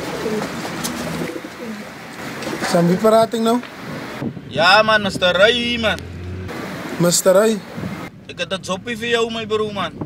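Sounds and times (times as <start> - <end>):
pigeons cooing: 0.0 - 2.7.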